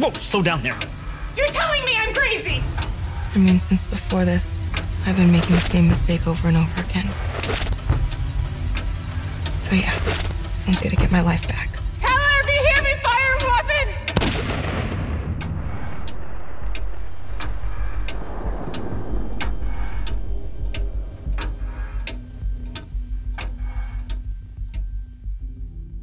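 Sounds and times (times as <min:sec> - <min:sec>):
low pulsing beat with ticks: 0:00.0 - 0:26.0
deep booming hit: 0:14.2 - 0:22.7.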